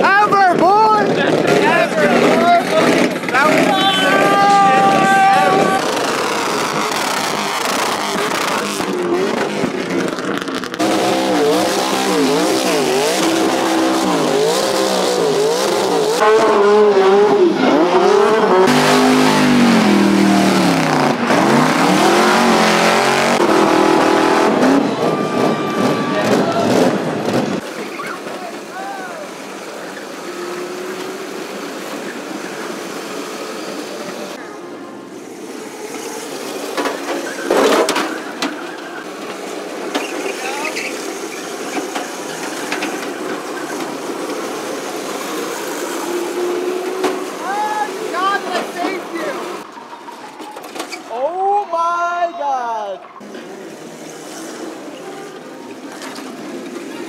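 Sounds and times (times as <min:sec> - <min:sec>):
steady engine: 0:00.0 - 0:49.9
car engines revving: 0:00.0 - 0:51.2, 0:53.0 - 0:57.0
tyre squeal: 0:03.4 - 0:08.3, 0:39.9 - 0:42.7.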